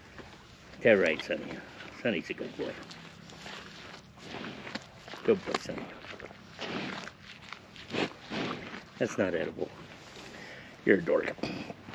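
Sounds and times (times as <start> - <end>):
calf munching hay: 0.1 - 10.3.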